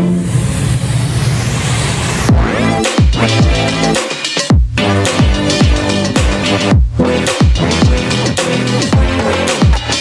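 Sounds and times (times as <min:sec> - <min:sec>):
wash of noise: 0:00.0 - 0:02.4
distorted synth bass note: 0:00.0 - 0:10.0
kick drums: 0:02.3 - 0:03.7, 0:04.5 - 0:08.1, 0:09.0 - 0:10.0.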